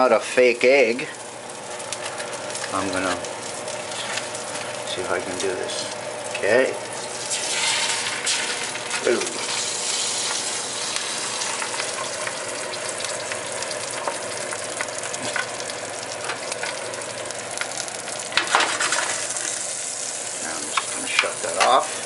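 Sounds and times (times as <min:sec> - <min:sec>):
egg sizzling in a pan: 0:00.0 - 0:22.0.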